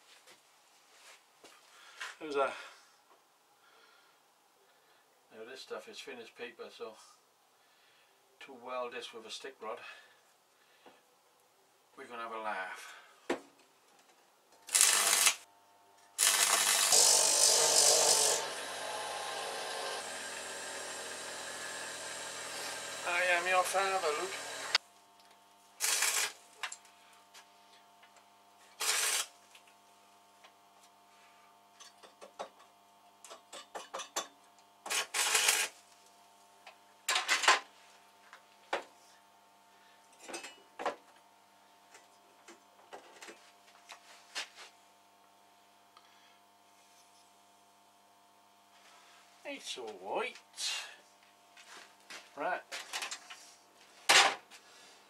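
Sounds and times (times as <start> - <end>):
arc welding bursts: 14.7 - 15.5, 16.2 - 24.8, 25.8 - 26.7, 28.7 - 29.3, 34.8 - 36.0.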